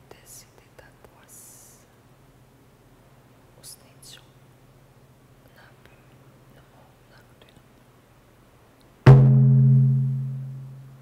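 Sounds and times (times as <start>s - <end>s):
soft breathy hiss: 0.0s - 8.8s
low hum: 9.1s - 11.0s.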